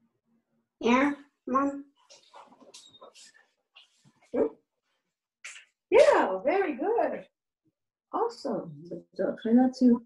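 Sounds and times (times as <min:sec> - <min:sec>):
faint room sounds: 0:00.0 - 0:07.4.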